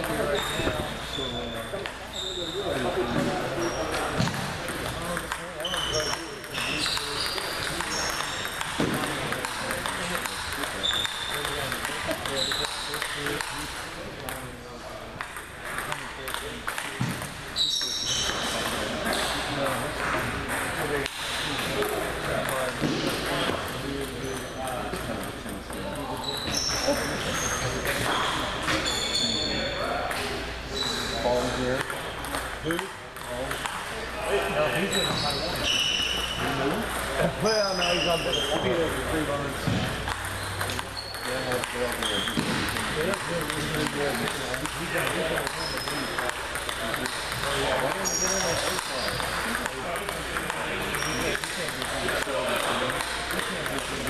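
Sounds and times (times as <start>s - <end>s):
table tennis balls pinging: 0.0s - 54.0s.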